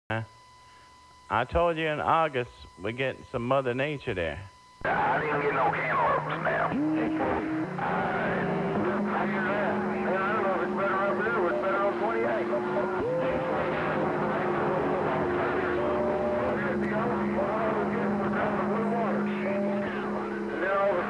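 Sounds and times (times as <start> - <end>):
garbled radio voices: 1.3 - 21.0
radio static: 1.3 - 21.0.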